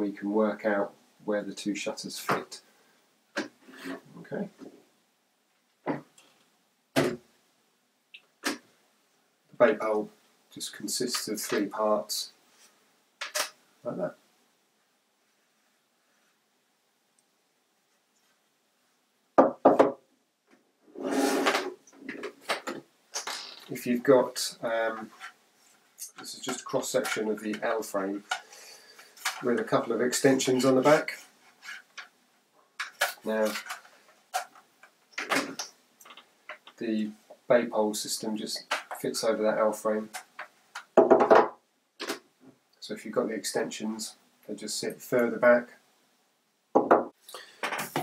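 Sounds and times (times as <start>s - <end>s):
plastic scraping on wooden desk: 20.9s - 23.3s.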